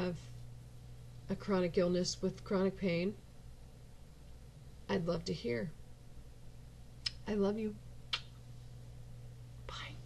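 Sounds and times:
steady low hum: 0:00.0 - 0:10.0
soft breathy whisper: 0:09.7 - 0:10.0.

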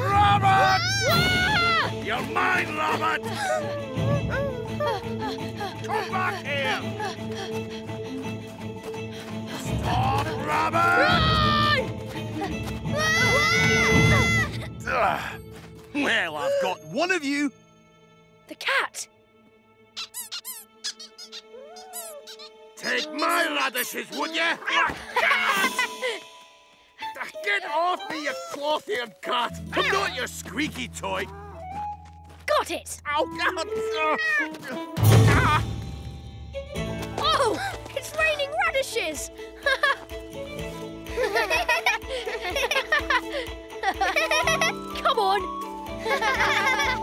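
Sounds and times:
soft background music: 0:00.0 - 0:47.0
squeaky toy squeaking: 0:20.0 - 0:23.6
cartoon characters giggling: 0:20.0 - 0:24.3, 0:25.0 - 0:26.2, 0:41.2 - 0:44.8, 0:46.0 - 0:47.0.

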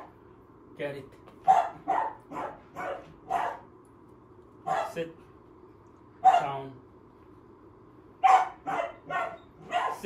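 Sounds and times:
puppy barking: 0:01.4 - 0:03.7, 0:04.6 - 0:05.0, 0:06.2 - 0:06.6, 0:08.2 - 0:10.0.

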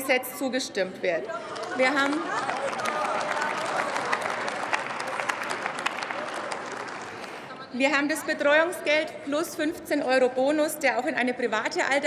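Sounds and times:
crowd applauding: 0:01.3 - 0:07.6.

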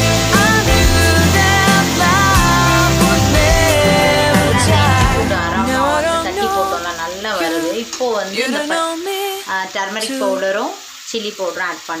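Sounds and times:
vegetables sizzling in a pan: 0:00.0 - 0:12.0
person talking: 0:03.5 - 0:10.8.

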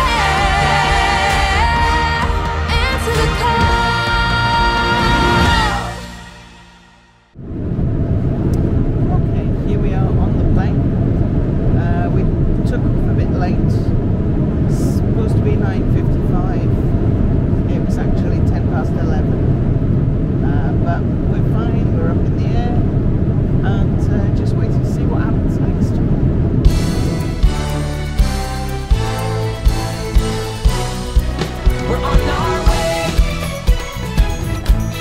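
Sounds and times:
airliner cabin rumble: 0:07.4 - 0:34.9.

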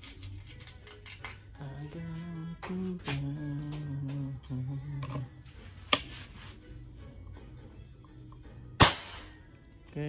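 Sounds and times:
air rifle shot: 0:08.8 - 0:09.4.

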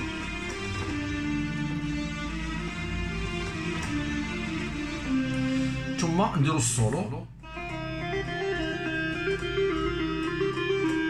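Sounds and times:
arranger keyboard melody: 0:00.0 - 0:11.0.

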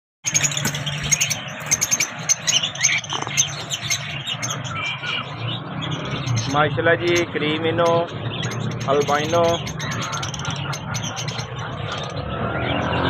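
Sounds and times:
lovebirds chirping and chattering: 0:00.2 - 0:13.0.

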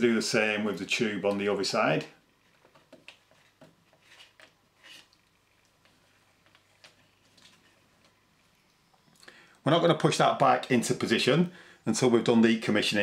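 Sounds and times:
faint plastic clicks and rustles: 0:01.2 - 0:09.6.

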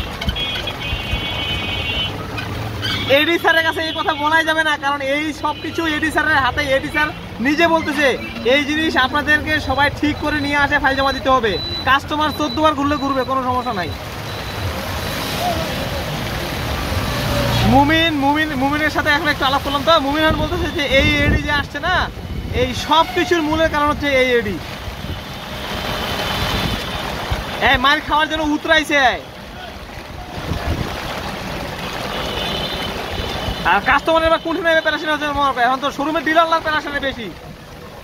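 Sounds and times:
heavy rain and tyre spray: 0:00.0 - 0:38.0
tyres hissing on wet road: 0:13.8 - 0:20.4, 0:24.4 - 0:27.8.

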